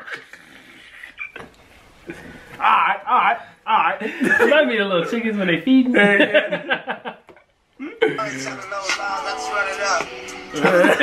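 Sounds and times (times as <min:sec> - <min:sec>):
men laughing and wheezing: 0:04.0 - 0:04.6, 0:10.3 - 0:11.0.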